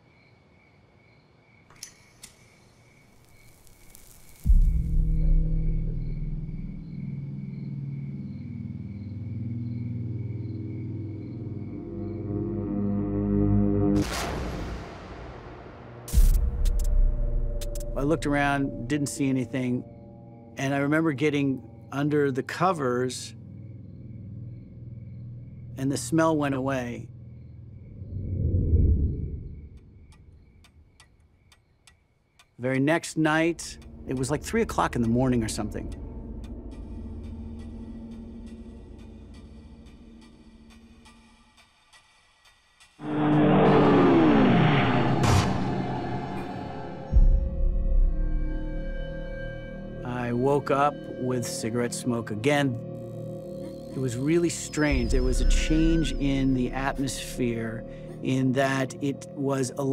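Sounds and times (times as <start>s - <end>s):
cricket-like chirping: 0.0s - 13.2s, 15.7s - 43.0s, 45.8s - 59.9s
low dark music drone: 4.4s - 14.1s, 15.6s - 30.5s, 33.2s - 42.2s, 42.8s - 59.9s
low rumbling swell: 27.8s - 30.0s
rising whoosh: 27.9s - 29.8s
clock ticking: 30.1s - 43.0s.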